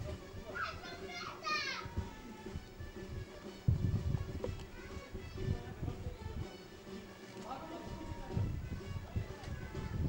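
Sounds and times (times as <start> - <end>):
children calling out: 0.5 - 2.4.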